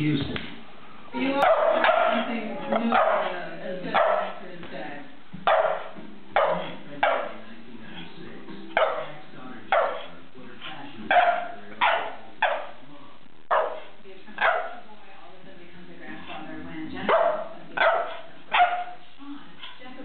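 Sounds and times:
dog barking: 0:01.4 - 0:04.4, 0:05.4 - 0:07.4, 0:08.8 - 0:10.2, 0:11.1 - 0:12.8, 0:13.5 - 0:14.9, 0:16.2 - 0:19.0.

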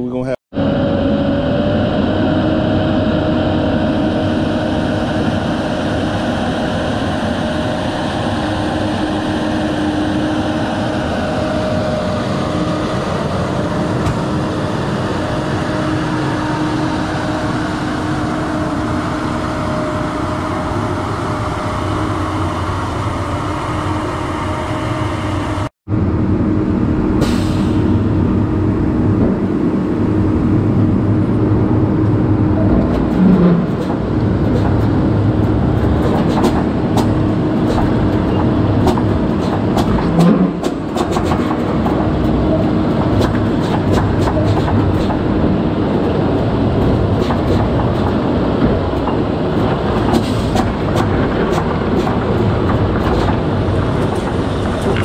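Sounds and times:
diesel truck engine droning: 0:00.0 - 0:55.0.

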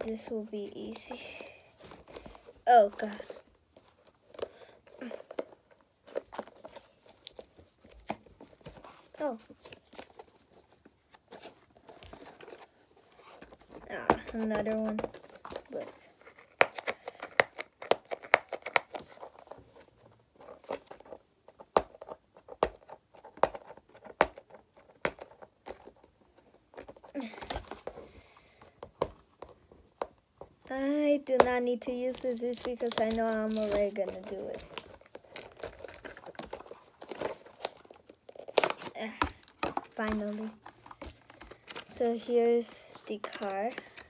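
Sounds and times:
plastic blister pack crackling: 0:00.0 - 0:10.6, 0:31.4 - 0:44.0
cardboard box crinkling: 0:00.0 - 0:28.2, 0:31.8 - 0:44.0.

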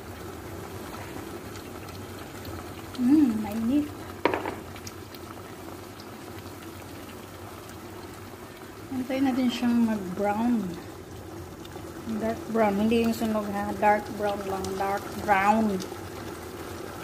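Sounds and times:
sauce bubbling in frying pan: 0:00.0 - 0:17.0
person's voice: 0:03.0 - 0:03.9, 0:08.9 - 0:10.8, 0:12.1 - 0:15.9.

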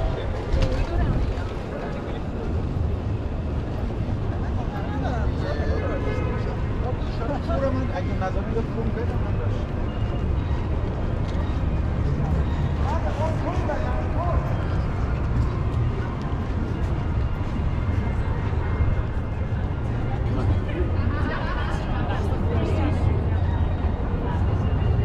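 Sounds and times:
passers-by talking: 0:00.0 - 0:25.0
traffic rumble: 0:00.0 - 0:25.0.

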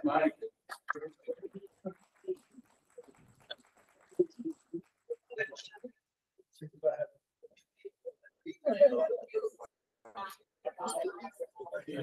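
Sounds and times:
faint scattered voices: 0:00.0 - 0:12.0.

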